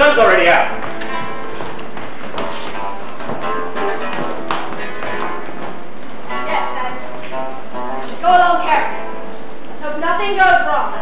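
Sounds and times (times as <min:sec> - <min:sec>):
sharp taps: 0:03.2 - 0:05.4.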